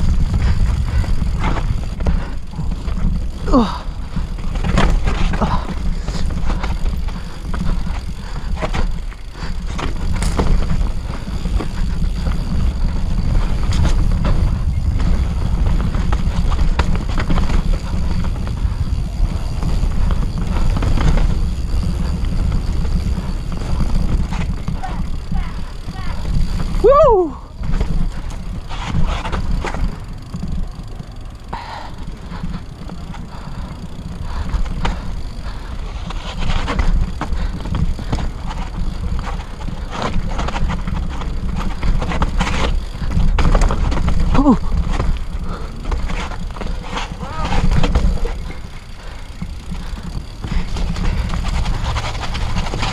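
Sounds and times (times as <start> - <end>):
bike chain and frame rattling: 0.0 - 52.9
bike tyres on dirt: 0.0 - 52.9
wind buffeting microphone: 0.0 - 52.9.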